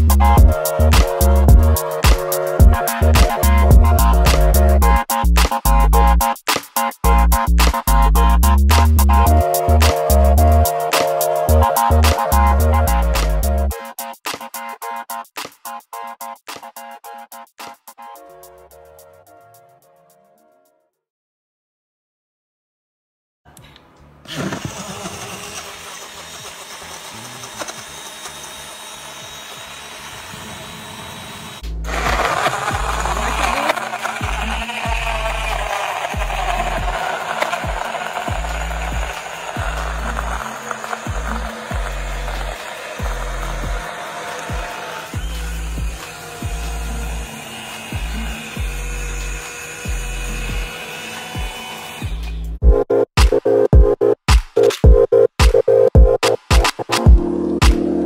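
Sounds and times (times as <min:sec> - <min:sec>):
pulsing bass beat: 0:00.0 - 0:06.3, 0:07.0 - 0:10.7, 0:11.5 - 0:13.7, 0:34.2 - 0:37.0, 0:37.7 - 0:40.4, 0:41.1 - 0:43.9, 0:45.2 - 0:47.1, 0:52.6 - 0:58.0
background music: 0:00.0 - 0:20.6, 0:31.6 - 0:58.0
blender whirring: 0:00.4 - 0:05.0, 0:24.3 - 0:52.4.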